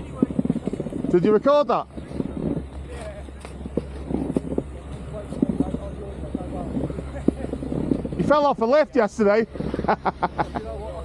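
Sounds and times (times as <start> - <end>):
faint indistinct voices: 0.0 - 11.0
steady low rumble: 0.0 - 11.0.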